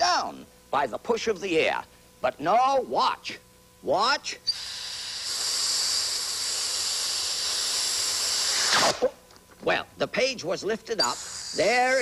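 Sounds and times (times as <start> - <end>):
compressed air hissing: 4.5 - 9.1, 11.0 - 12.0.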